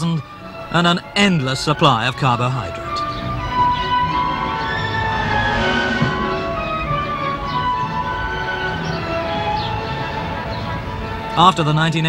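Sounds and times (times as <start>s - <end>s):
orchestra with sustained strings: 0.0s - 12.0s.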